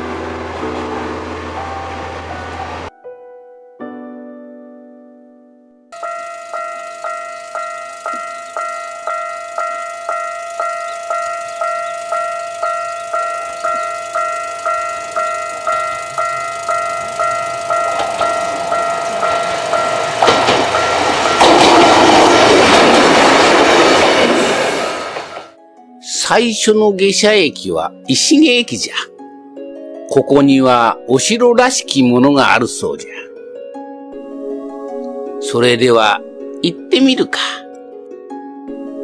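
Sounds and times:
diesel railcar passing: 0:00.0 - 0:02.9, 0:06.0 - 0:25.6
level-crossing bell dinging: 0:06.0 - 0:22.8
train wheels clacking: 0:06.0 - 0:25.5.

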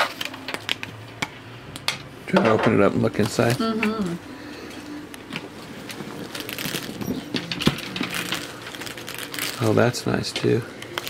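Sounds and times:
leather bag rustling: 0:05.4 - 0:10.2.

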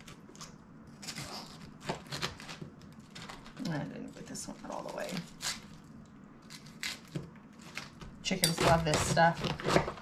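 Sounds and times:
knife crunching through cabbage: 0:00.0 - 0:10.0.

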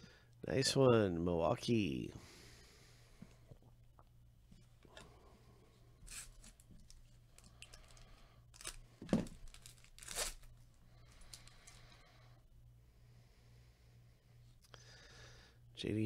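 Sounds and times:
wrapper crinkling: 0:06.1 - 0:11.8
foil pack ripping: 0:07.4 - 0:10.6.

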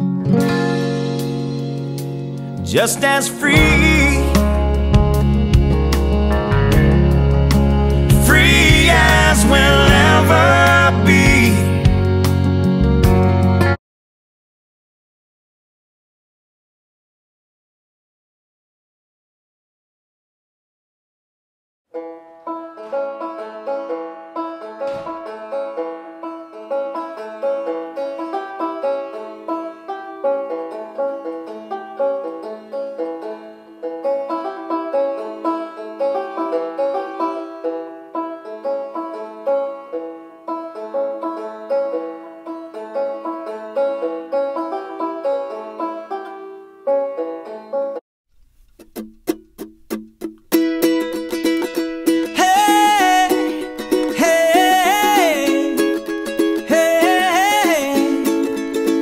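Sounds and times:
banjo picking: 0:00.0 - 0:13.8, 0:21.9 - 0:59.0
sharp strummed strikes: 0:00.0 - 0:13.8, 0:48.4 - 0:59.0.

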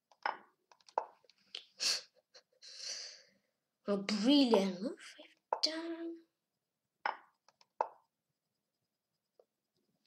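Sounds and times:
boy breathing sharply: 0:01.8 - 0:03.4.

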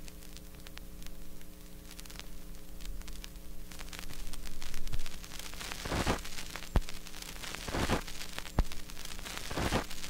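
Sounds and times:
electrical hum: 0:00.0 - 0:10.0
vinyl crackles and pops: 0:00.0 - 0:10.0.

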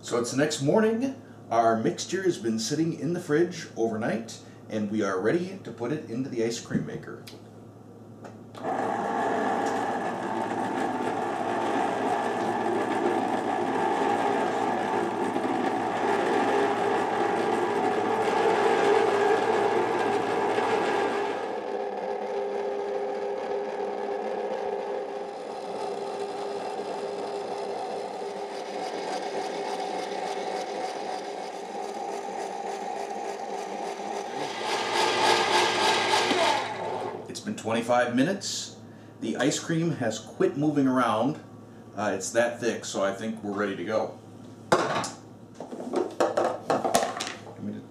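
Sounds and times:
ice cream maker motor humming: 0:08.6 - 0:37.3.

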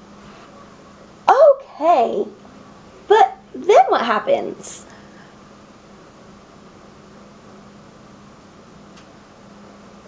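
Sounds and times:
faint click: 0:08.9 - 0:09.1.

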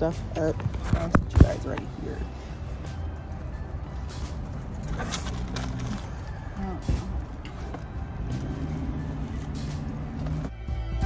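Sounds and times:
car engine humming: 0:00.0 - 0:11.0.

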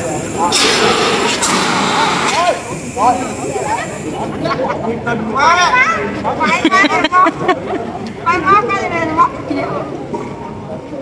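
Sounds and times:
fire extinguisher hissing: 0:00.0 - 0:04.3
crowd talking: 0:00.0 - 0:11.0.

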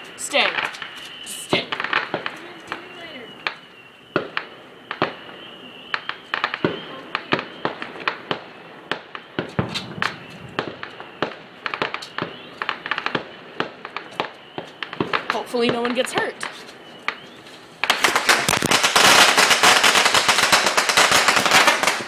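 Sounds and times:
firecrackers popping: 0:00.0 - 0:22.0.

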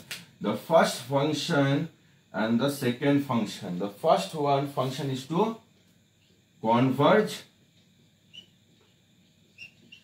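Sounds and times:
low room tone: 0:00.0 - 0:10.0
marker squeaking on whiteboard: 0:08.2 - 0:10.0.

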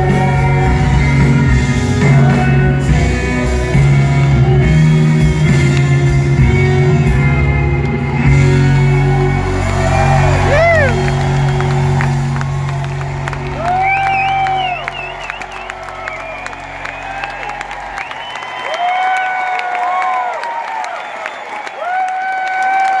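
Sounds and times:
rock band closing chord: 0:00.0 - 0:18.3
crowd applauding and cheering: 0:00.0 - 0:23.0
long whoops: 0:08.4 - 0:23.0.

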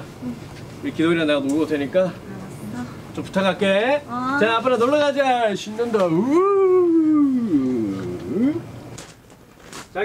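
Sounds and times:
man whooping: 0:06.2 - 0:08.7.

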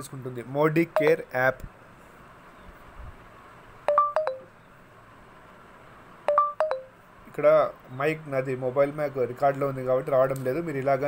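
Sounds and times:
descending electronic tone chime: 0:01.0 - 0:01.2, 0:03.9 - 0:04.5, 0:06.3 - 0:07.0.

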